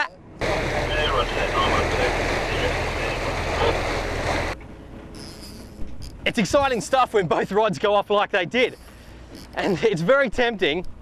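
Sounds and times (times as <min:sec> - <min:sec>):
boat engine running: 0:00.0 - 0:11.0
wind: 0:00.0 - 0:11.0
sea noise: 0:00.4 - 0:07.7.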